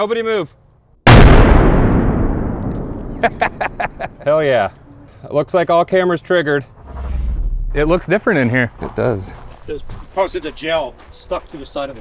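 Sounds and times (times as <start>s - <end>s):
grenade explosion: 1.1s - 4.0s.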